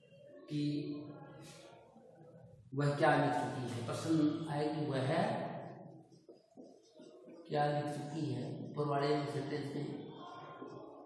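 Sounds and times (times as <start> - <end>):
man's voice: 7.5 - 10.1.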